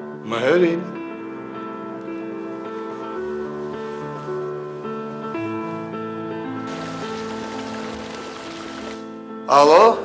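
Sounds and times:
fountain jets splashing into pond: 6.7s - 9.1s.

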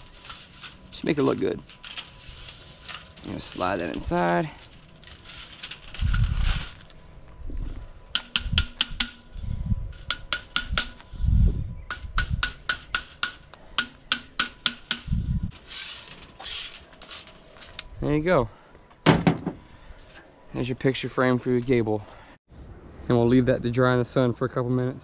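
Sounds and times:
dull thumps: 19.0s - 19.7s.

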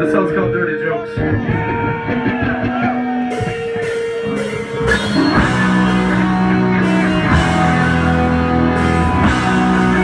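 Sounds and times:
electric guitar single notes: 0.0s - 10.0s
punk rock band playing: 0.0s - 10.0s.

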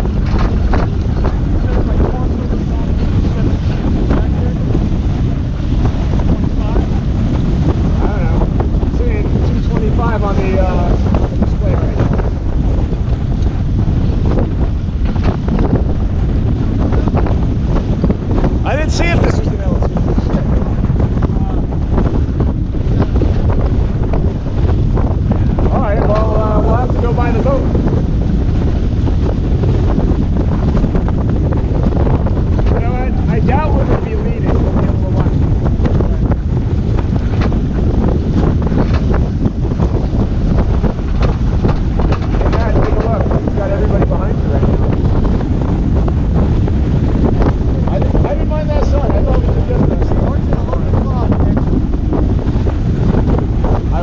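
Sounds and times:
water rushing along hull: 0.0s - 54.0s
wind buffeting microphone: 0.0s - 54.0s.

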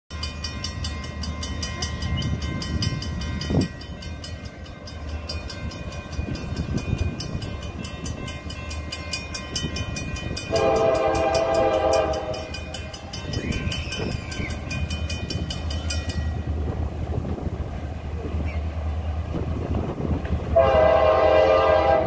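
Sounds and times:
crossing bell dinging: 0.1s - 17.1s
diesel locomotive rumble: 0.2s - 22.0s.

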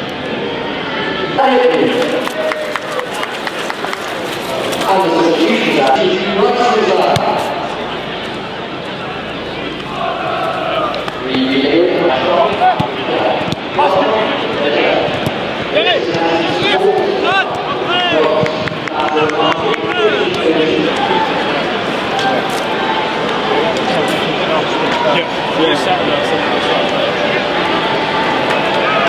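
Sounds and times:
voices talking and calling: 0.0s - 29.0s.

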